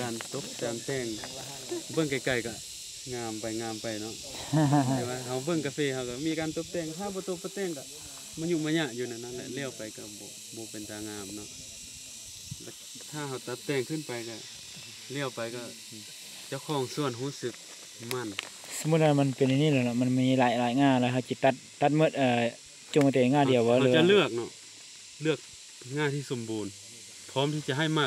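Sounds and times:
people talking: 0:00.0 - 0:07.8, 0:08.4 - 0:11.6, 0:13.0 - 0:14.4, 0:15.1 - 0:24.5, 0:25.2 - 0:26.7, 0:27.3 - 0:28.0
high-pitched hiss: 0:00.0 - 0:28.0.

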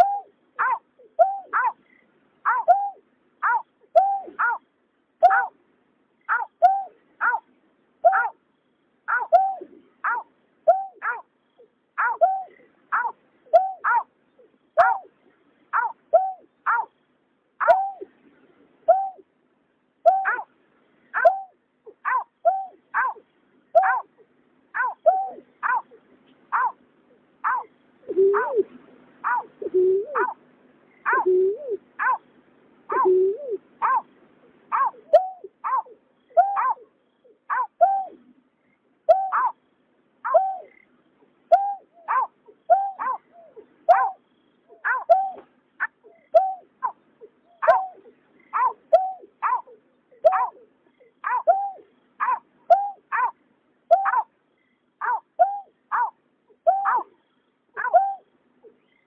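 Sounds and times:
deeper bird hoots: 0:00.0 - 0:04.6, 0:05.2 - 0:05.5, 0:08.0 - 0:08.4, 0:09.1 - 0:15.1, 0:15.7 - 0:16.9, 0:17.6 - 0:18.1, 0:20.0 - 0:20.5, 0:21.1 - 0:24.2, 0:24.8 - 0:26.8, 0:27.4 - 0:32.2, 0:32.9 - 0:34.1, 0:34.7 - 0:38.2, 0:39.1 - 0:39.6, 0:40.2 - 0:40.8, 0:41.5 - 0:54.3, 0:55.0 - 0:59.0.

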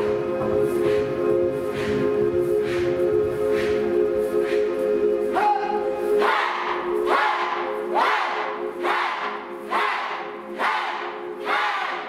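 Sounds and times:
held musical drone: 0:00.0 - 0:12.0
group of voices shouting rhythmically: 0:05.3 - 0:12.0.

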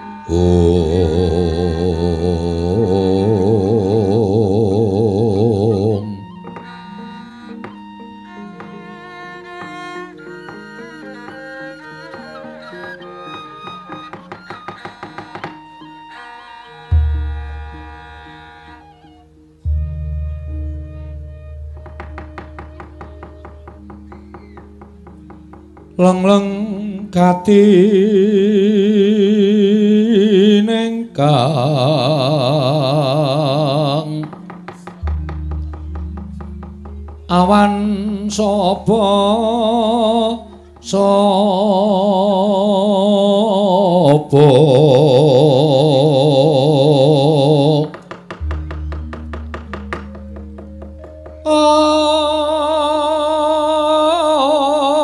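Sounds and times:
gamelan music: 0:00.0 - 0:30.6, 0:31.2 - 0:55.0
sung note with vibrato: 0:12.1 - 0:25.2
low sustained gong hum: 0:19.6 - 0:22.1
soft held tones: 0:46.7 - 0:54.6.

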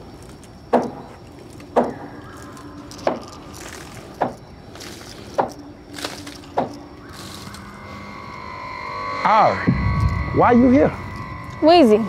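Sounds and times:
sustained orchestral chords: 0:06.9 - 0:12.0
soft low thumps: 0:09.5 - 0:12.0.

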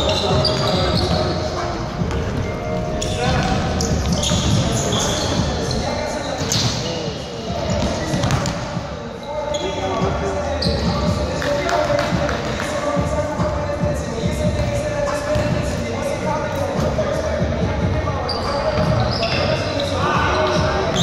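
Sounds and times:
players' indistinct calls: 0:00.0 - 0:21.0
sneakers squeaking: 0:00.0 - 0:21.0.

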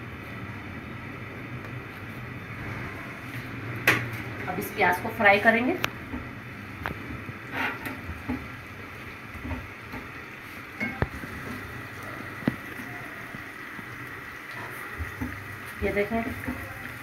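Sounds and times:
onions sizzling in oil: 0:02.1 - 0:17.0
spatula scraping pan: 0:07.5 - 0:08.0.

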